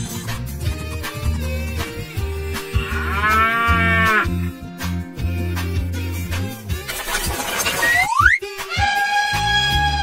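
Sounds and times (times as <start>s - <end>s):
backing music: 0.0s - 10.0s
cattle moo: 2.6s - 4.5s.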